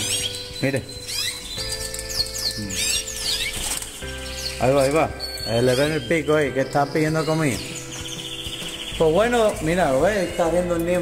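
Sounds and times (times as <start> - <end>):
canaries chirping: 0.0 - 11.0.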